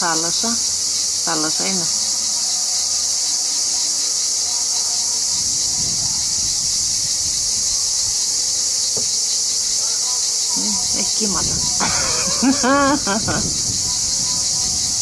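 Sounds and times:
cicadas shrilling: 0.0 - 15.0.

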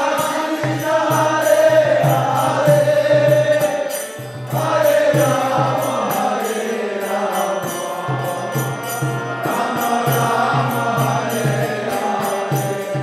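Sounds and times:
group chanting: 0.0 - 13.0
small hand cymbals striking: 0.0 - 13.0
sustained harmonium: 0.0 - 13.0.

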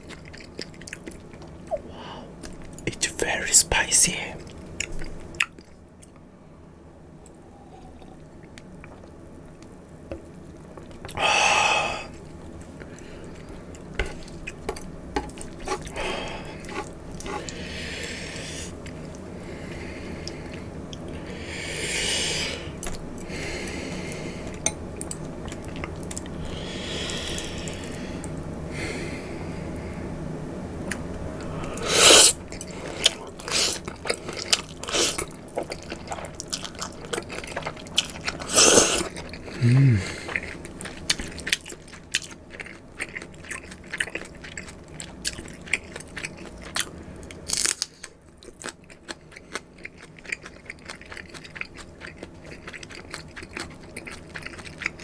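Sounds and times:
chewing: 0.0 - 2.8, 4.4 - 6.2, 7.2 - 11.2, 12.1 - 21.2, 24.0 - 28.5, 30.8 - 55.0
noodle slurping: 15.4 - 18.7, 31.8 - 40.6.

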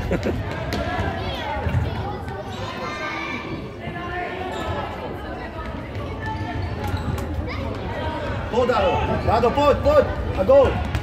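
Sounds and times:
voices in large hall: 0.0 - 11.0.

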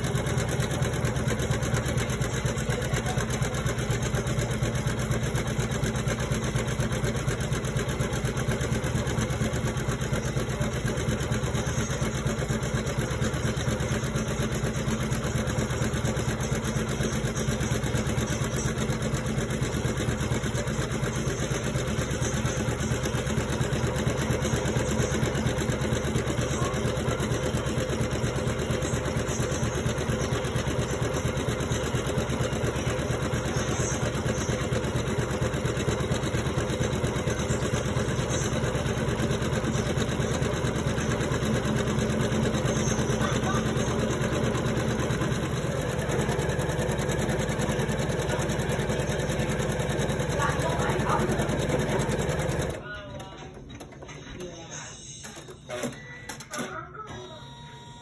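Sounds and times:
embroidery machine stitching: 0.0 - 58.0.

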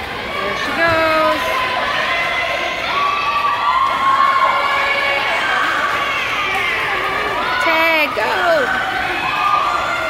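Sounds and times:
girls shouting and cheering: 0.2 - 10.0.

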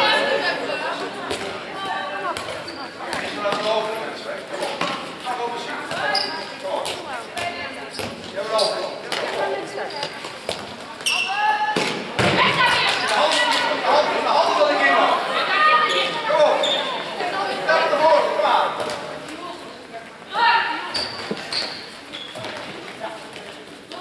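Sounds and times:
voices calling out: 0.0 - 22.5
ball bouncing on hall floor: 2.2 - 3.7, 5.8 - 8.3, 9.1 - 13.1, 20.9 - 23.6.

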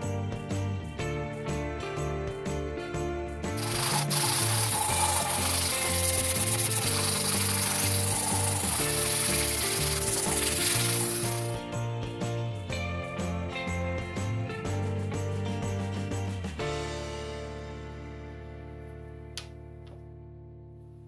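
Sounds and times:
background music: 0.0 - 21.0
hand sanding wood: 3.6 - 11.6.

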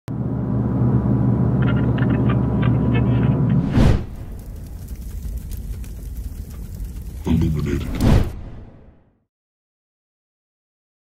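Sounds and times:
low droning rumble: 0.1 - 9.0
loud whoosh burst: 3.6 - 4.5, 7.6 - 9.0.

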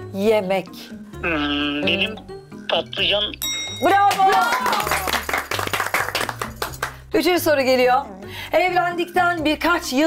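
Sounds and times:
soft background music: 0.0 - 10.0
people clapping: 4.0 - 7.0.

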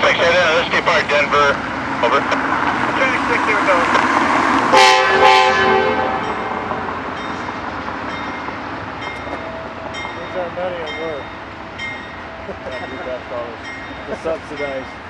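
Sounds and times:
locomotive horn blast: 4.6 - 7.1.

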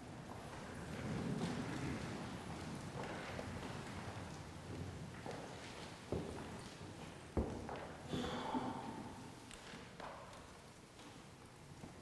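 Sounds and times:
people shuffling and rustling clothes: 0.0 - 12.0.

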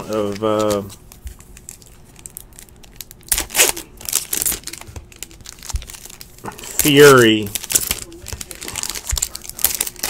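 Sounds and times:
wrapper crinkling and tearing: 0.0 - 10.0
wrapper rustling: 0.0 - 10.0.

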